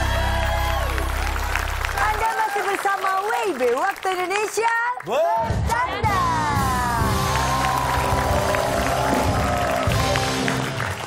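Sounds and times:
audience clapping: 0.0s - 5.6s, 6.9s - 11.0s
theme music with held chords: 6.0s - 11.0s.

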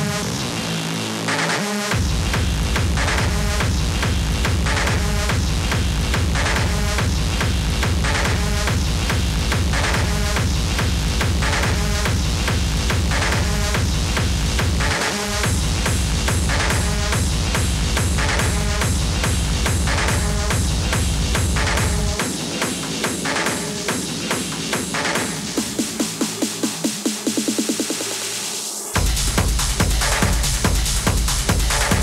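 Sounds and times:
hard techno music: 0.0s - 32.0s
bass line: 1.9s - 22.3s, 29.0s - 32.0s
kick drum: 2.0s - 26.0s, 29.0s - 32.0s.

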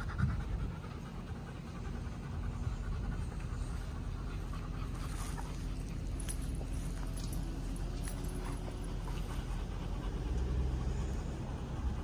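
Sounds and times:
wind rumbling on microphone: 0.0s - 6.0s
dog panting: 0.0s - 12.0s.

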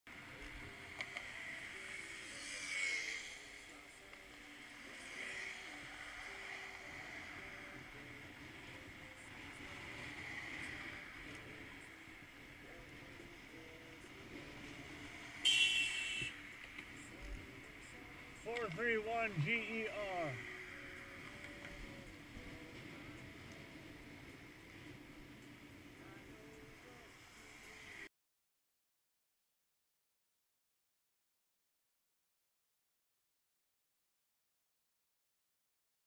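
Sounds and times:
wind and road noise from bicycle: 0.1s - 28.1s
loud horn honk: 15.4s - 16.4s.

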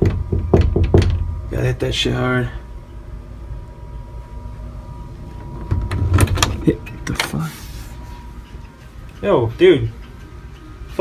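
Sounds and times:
door creaking: 0.0s - 1.5s, 5.2s - 7.5s.

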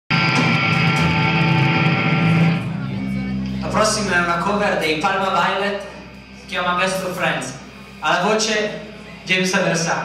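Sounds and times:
electric guitars ringing chord: 0.1s - 9.2s
man speaking: 3.6s - 10.0s.

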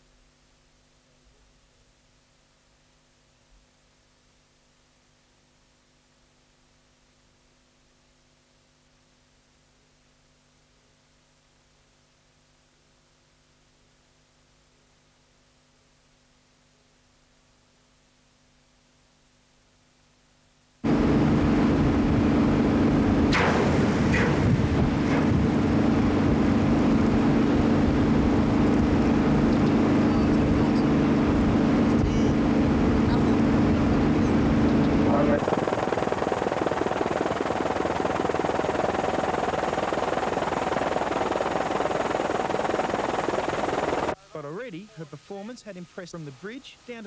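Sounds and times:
machinery hum: 20.8s - 47.0s
thin high whine: 20.9s - 46.8s
wind noise: 21.7s - 29.6s
crackling rush: 32.9s - 44.2s
broad hissing noise: 35.0s - 47.0s.

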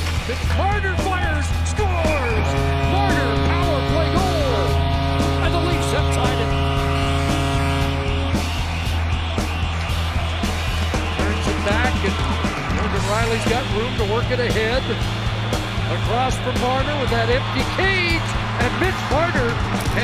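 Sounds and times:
arena music playing: 0.0s - 20.0s
crowd cheering: 0.0s - 20.0s
goal horn blaring: 1.1s - 10.0s, 10.8s - 12.5s.

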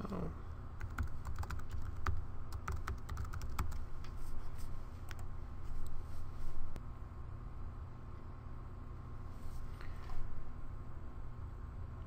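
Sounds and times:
steady low hum: 0.0s - 12.0s
typing on computer keyboard: 0.8s - 3.8s.

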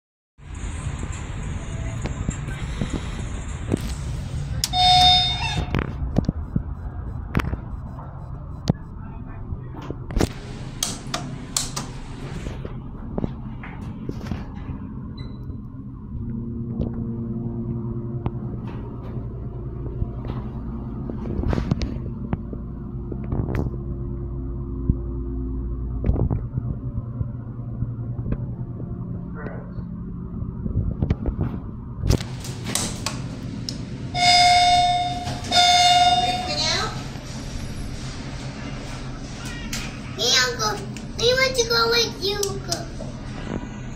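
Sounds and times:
loud buzz-like tone: 4.6s - 5.8s, 34.1s - 36.8s.

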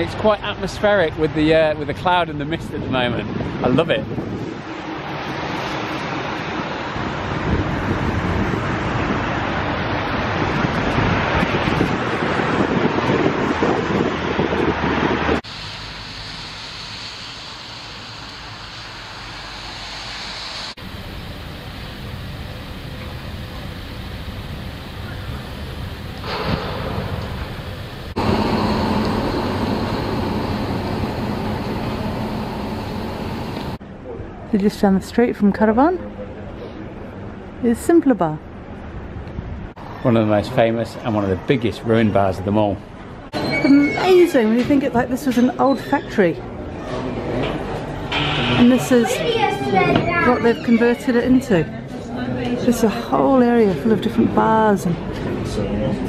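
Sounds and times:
wind buffeting microphone: 2.2s - 4.8s, 7.1s - 15.4s, 24.6s - 33.8s
traffic noise: 3.3s - 34.0s, 36.0s - 56.0s.

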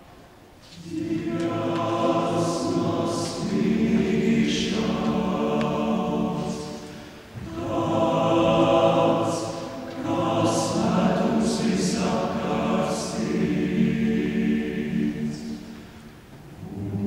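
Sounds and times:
male choir singing: 0.8s - 15.8s.

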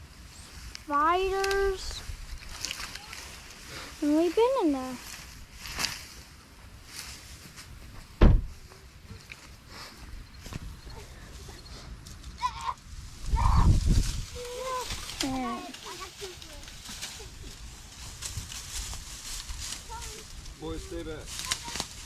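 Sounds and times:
footsteps in dry grass: 0.0s - 22.0s.

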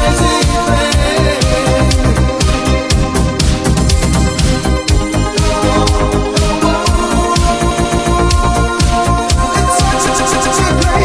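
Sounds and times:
electronic disco dance music: 0.0s - 11.0s.

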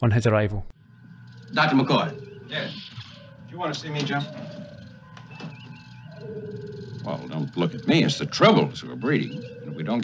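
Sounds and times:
faint electronic hum: 0.2s - 10.0s
creature cooing: 1.5s - 10.0s.

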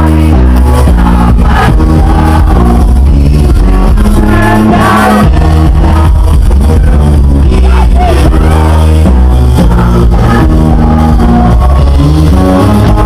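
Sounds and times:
live band music: 0.0s - 13.0s.

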